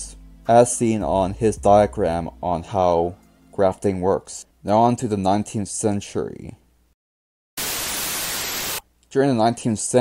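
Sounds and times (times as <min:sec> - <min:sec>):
static hiss: 0:07.6 - 0:08.9.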